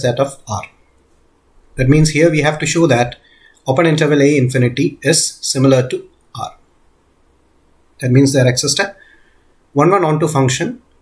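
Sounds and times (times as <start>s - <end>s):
man saying a syllable: 1.8s - 6.6s.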